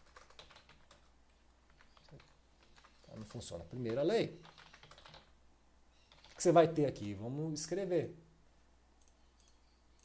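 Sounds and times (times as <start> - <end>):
computer keyboard typing: 0.0 - 1.1, 1.7 - 5.3, 6.1 - 6.5.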